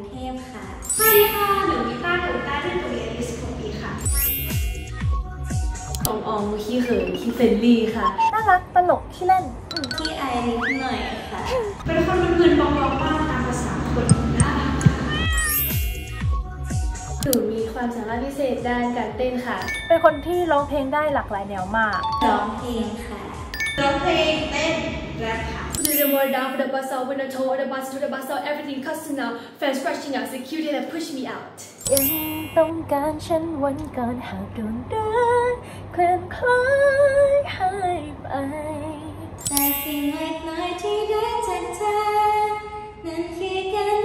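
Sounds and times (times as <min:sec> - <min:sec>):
background music with light beats: 0:00.0 - 0:26.3
cat meow: 0:14.8 - 0:15.5
young woman singing: 0:32.6 - 0:39.3, 0:40.0 - 0:44.0.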